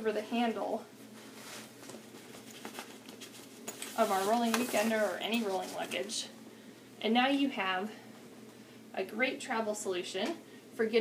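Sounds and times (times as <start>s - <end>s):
fabric rustling: 1.0s - 6.2s.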